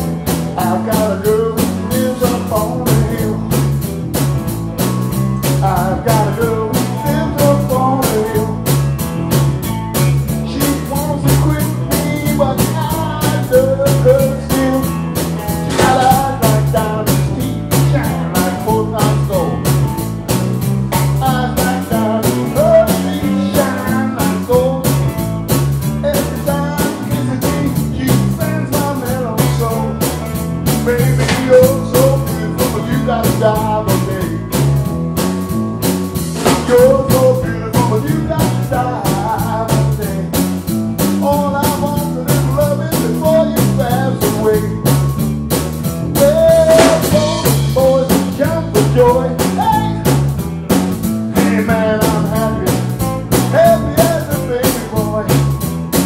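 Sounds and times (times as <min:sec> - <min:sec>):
bass guitar: 0:00.0 - 0:56.0
drum beat: 0:00.0 - 0:56.0
electric guitar: 0:00.0 - 0:56.0
man singing into microphone: 0:00.5 - 0:03.6, 0:05.4 - 0:08.6, 0:10.3 - 0:15.0, 0:15.6 - 0:19.7, 0:21.0 - 0:25.1, 0:26.0 - 0:30.2, 0:30.8 - 0:34.5, 0:36.4 - 0:40.4, 0:41.0 - 0:45.0, 0:46.2 - 0:50.2, 0:51.3 - 0:55.6.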